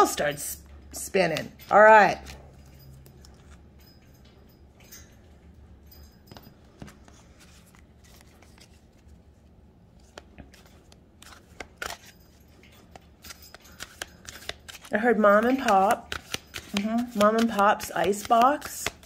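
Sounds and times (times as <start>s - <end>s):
deck shuffled by hand: 6.8s - 9.3s, 10.0s - 12.1s, 13.2s - 19.0s.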